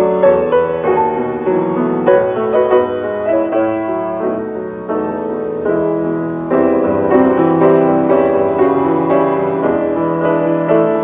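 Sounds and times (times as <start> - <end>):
grand piano playing: 0.0 - 11.0.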